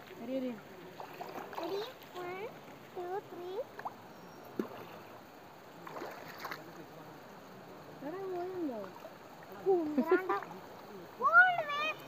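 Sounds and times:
flowing river water: 0.0 - 12.0
stones splashing into river: 3.7 - 5.1, 5.8 - 6.7
child calling: 11.2 - 12.0.

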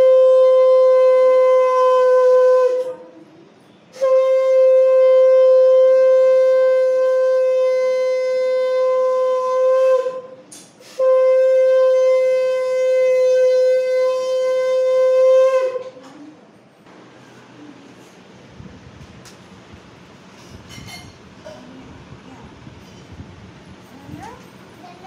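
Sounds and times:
conch shell blasts: 3.9 - 16.0.

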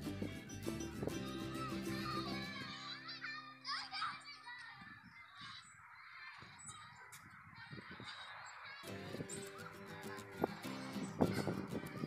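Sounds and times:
background music: 0.0 - 3.4
outdoor background noise: 0.0 - 12.0.

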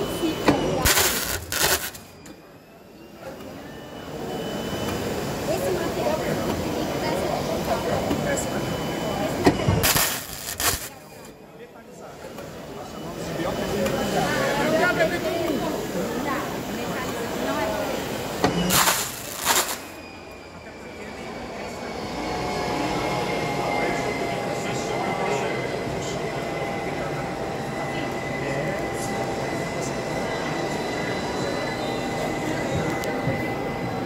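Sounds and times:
printing machinery running: 0.0 - 2.2, 3.3 - 11.3, 12.2 - 20.0
crowd chatter: 0.0 - 34.0
burst of loud noise: 0.8 - 2.0, 9.8 - 11.0, 18.7 - 20.0.

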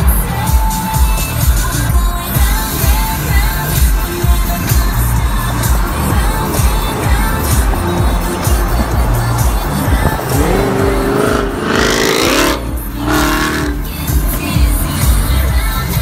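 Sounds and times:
music: 0.0 - 16.0
car engine accelerating hard: 4.5 - 15.5.

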